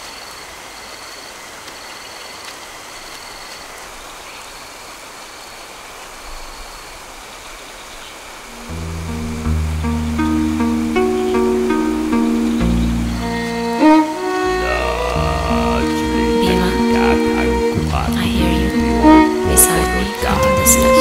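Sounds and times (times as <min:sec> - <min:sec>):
rushing forest ambience: 0:00.0 - 0:21.0
low bowed-string music: 0:08.4 - 0:21.0.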